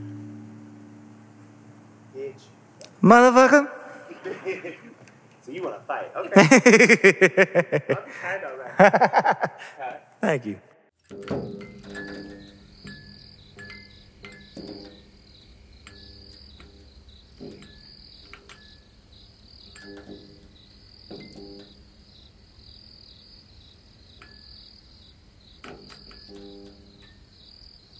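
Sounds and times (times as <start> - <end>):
crickets chirping: 0.0 - 10.4, 11.0 - 27.9.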